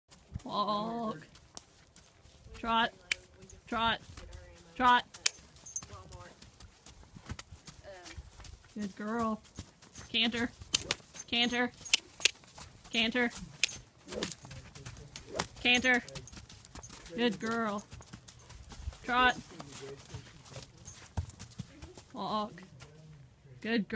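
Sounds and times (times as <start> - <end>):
horse hooves trotting: 0.1 - 23.3.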